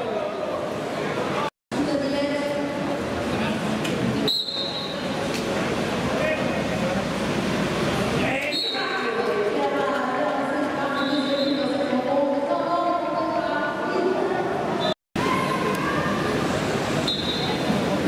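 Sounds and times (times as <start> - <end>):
voices echoing in a hall: 0.0 - 18.0.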